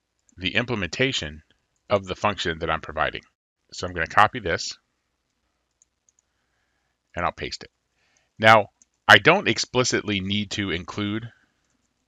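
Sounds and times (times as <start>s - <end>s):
computer mouse clicks: 5.6s - 6.4s, 8.2s - 9.0s, 11.6s - 12.0s.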